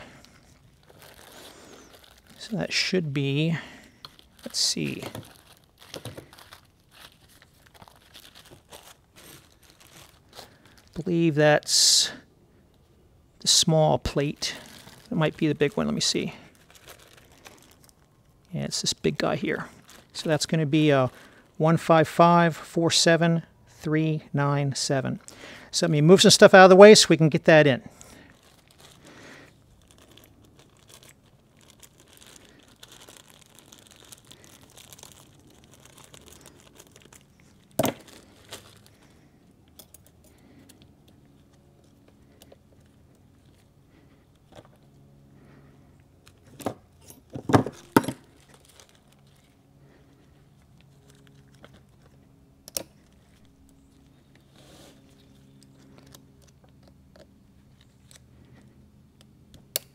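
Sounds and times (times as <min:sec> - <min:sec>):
quiet rustling and handling: 0:00.0 - 0:11.4, 0:27.5 - 0:59.4.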